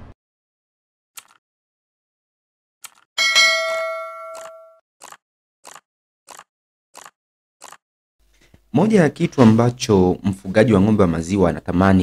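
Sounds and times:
bright metallic bell ding: 0:03.2 - 0:04.8.

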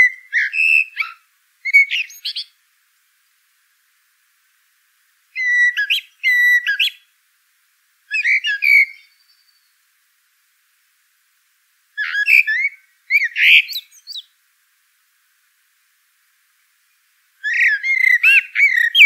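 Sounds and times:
songbird singing: 0:00.0 - 0:03.5, 0:05.3 - 0:07.2, 0:08.1 - 0:10.1, 0:11.9 - 0:14.4, 0:16.4 - 0:19.0.

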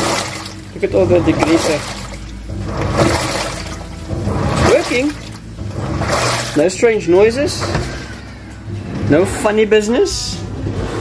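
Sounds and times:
washing machine water churning: 0:00.0 - 0:11.0.

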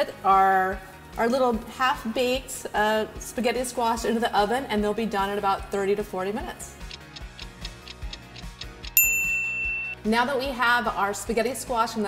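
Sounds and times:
light background music: 0:00.0 - 0:12.0
clock-like ticking: 0:06.8 - 0:10.0
timer bell ding: 0:09.0 - 0:10.2.

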